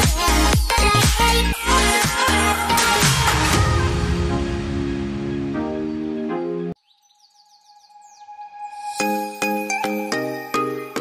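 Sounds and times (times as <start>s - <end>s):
background music: 0.0s - 6.8s, 8.0s - 11.0s
falling bird-like chirps: 4.9s - 9.4s.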